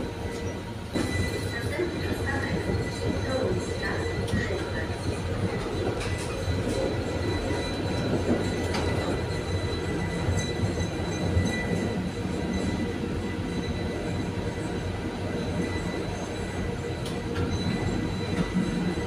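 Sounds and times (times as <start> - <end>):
tram wheels rumbling on rails: 0.0 - 19.0.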